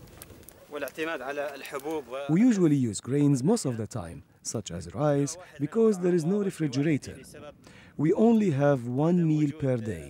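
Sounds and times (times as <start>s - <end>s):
wood fire crackling: 0.0s - 10.0s.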